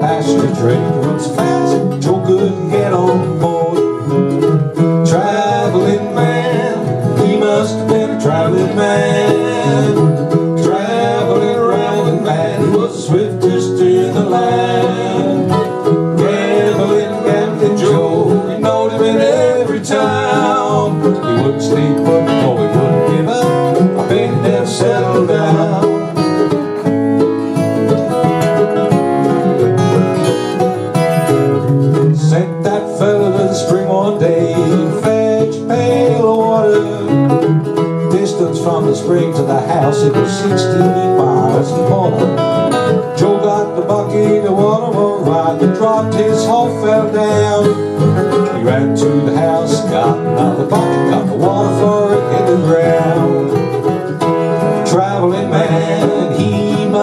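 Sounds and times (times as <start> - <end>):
acoustic guitars picking: 0.0 - 57.0
small plucked string instrument: 0.0 - 57.0.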